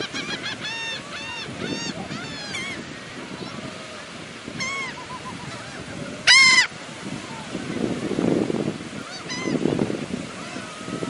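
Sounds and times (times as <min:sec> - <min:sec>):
faint gull calls: 0:00.0 - 0:02.8, 0:04.6 - 0:06.8
gull loud arching call: 0:06.3 - 0:06.7.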